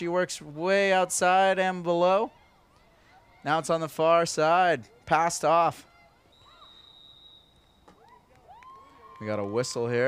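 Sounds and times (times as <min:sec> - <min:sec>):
referee's whistle blast: 0:06.3 - 0:07.9.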